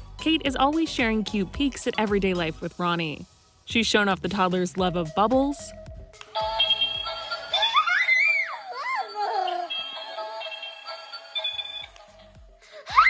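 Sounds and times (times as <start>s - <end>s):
tinny electronic toy tune: 8.5s - 12.2s.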